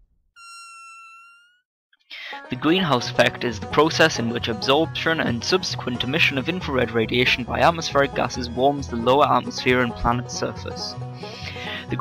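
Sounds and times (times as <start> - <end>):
high pitched tone: 0.4 - 1.6.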